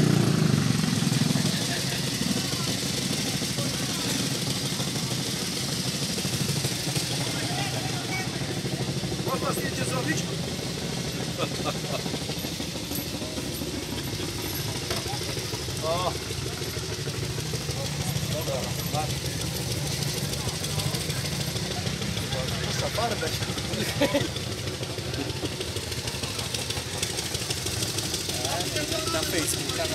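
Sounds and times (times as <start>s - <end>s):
motorcycle engine idling: 0.0s - 29.9s
faint voices: 0.8s - 29.9s.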